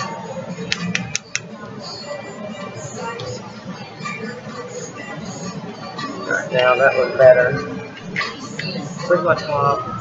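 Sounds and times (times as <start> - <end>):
background music: 0.0 - 10.0
murmur of voices: 0.0 - 10.0.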